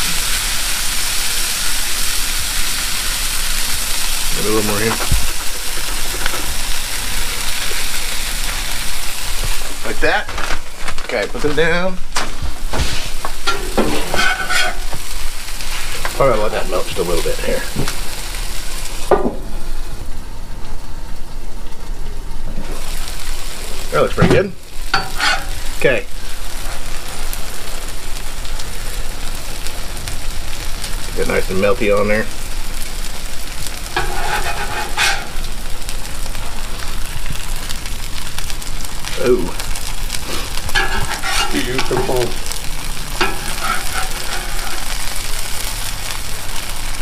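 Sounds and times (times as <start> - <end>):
cheese sizzling on a griddle: 0.0 - 47.0
metal spatula scraping griddle: 4.4 - 8.6, 12.7 - 16.0, 24.9 - 25.8, 33.8 - 35.7, 40.2 - 45.6.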